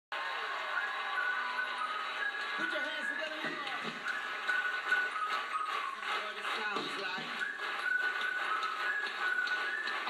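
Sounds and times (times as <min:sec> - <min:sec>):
live band music from television: 0:00.1 - 0:10.0
hand claps on the beat: 0:00.2 - 0:10.0.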